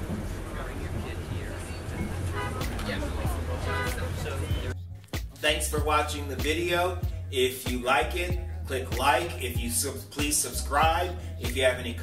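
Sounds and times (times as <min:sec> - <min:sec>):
passengers talking: 0:00.0 - 0:04.8
bus engine and road rumble: 0:00.0 - 0:05.1
music playing: 0:00.0 - 0:12.0.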